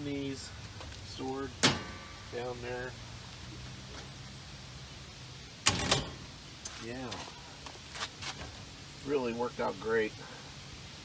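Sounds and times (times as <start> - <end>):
metal cabinet clatter: 1.6 - 2.1, 5.7 - 6.3.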